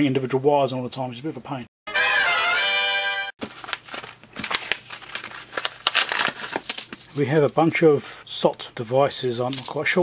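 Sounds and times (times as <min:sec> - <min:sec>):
brass jingle: 0:01.9 - 0:03.4
paper and plastic packaging rustling: 0:03.4 - 0:07.8.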